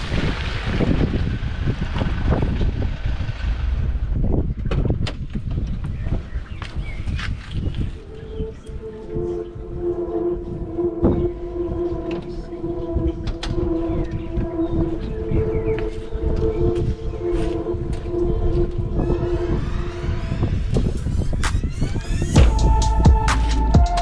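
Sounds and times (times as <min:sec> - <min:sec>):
wind rumbling on microphone: 0:00.0 - 0:23.3
drone of held tones: 0:07.9 - 0:24.0.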